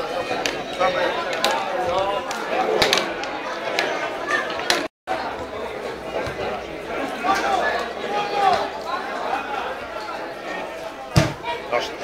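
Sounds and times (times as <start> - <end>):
spectators talking and calling out: 0.0 - 12.0.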